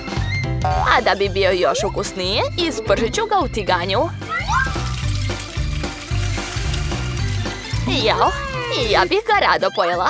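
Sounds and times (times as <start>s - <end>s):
sandwich sizzling in a pan: 4.1s - 9.1s.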